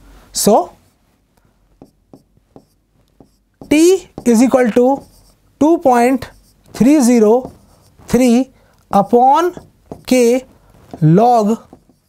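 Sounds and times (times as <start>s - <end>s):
writing on a board: 1.8s - 12.0s.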